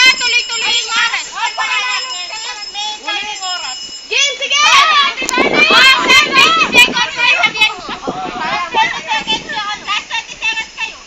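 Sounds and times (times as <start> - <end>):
young people shouting and squealing: 0.0 - 11.0.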